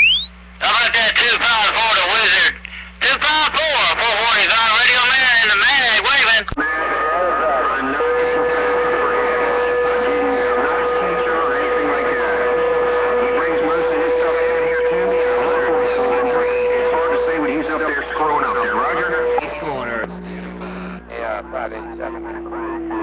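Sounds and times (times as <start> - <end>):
steady whistling tones: 0.0 - 0.4, 6.7 - 23.0
radio static: 0.0 - 23.0
faint overlapping radio voices: 0.2 - 23.0
distorted warbling radio voice: 0.6 - 23.0.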